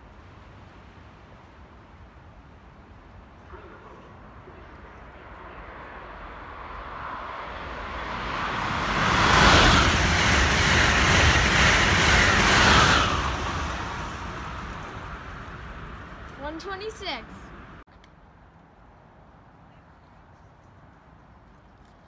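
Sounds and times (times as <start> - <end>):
high-speed train passing: 0.0 - 17.8.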